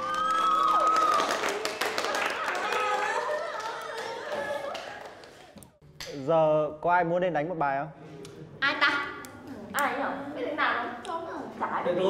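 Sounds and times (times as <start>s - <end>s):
high cheering voice: 0.0s - 5.1s
students clapping: 0.0s - 6.1s.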